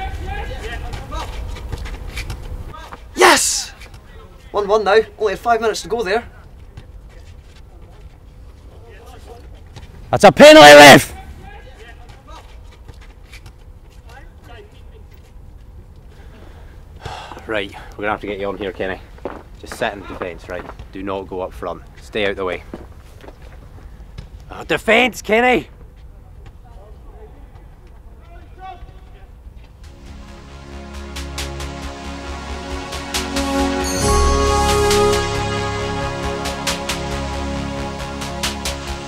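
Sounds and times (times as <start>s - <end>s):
music with a steady beat: 29.8s - 39.0s.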